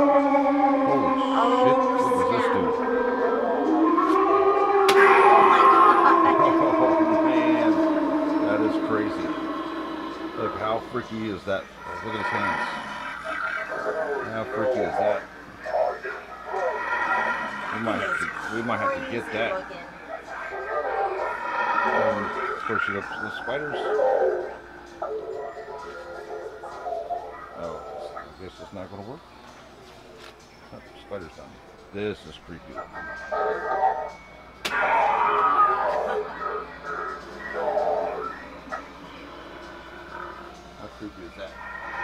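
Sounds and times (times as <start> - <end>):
long held wail from speaker: 0.0 - 24.7, 34.7 - 40.5
recorded voice speaking: 13.8 - 16.8.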